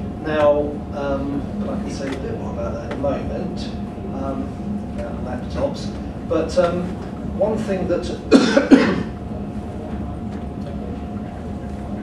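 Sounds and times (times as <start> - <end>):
man coughing: 8.3 - 9.2.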